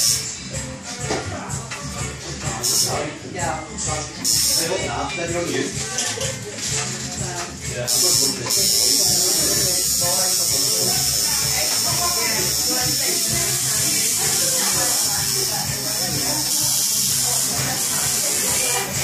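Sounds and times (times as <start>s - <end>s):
tattoo machine buzzing: 0.0s - 0.3s, 2.6s - 3.0s, 4.2s - 4.9s, 7.8s - 19.0s.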